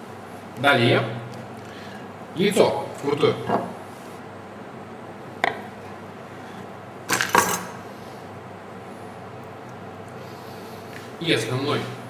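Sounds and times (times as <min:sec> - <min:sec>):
tableware clinking: 0:03.4 - 0:03.7, 0:07.1 - 0:07.8.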